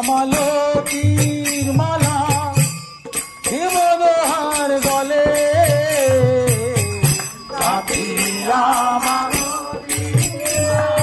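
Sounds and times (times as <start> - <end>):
hand cymbals struck rhythmically: 0.0 - 11.0
man singing devotional song: 0.0 - 11.0.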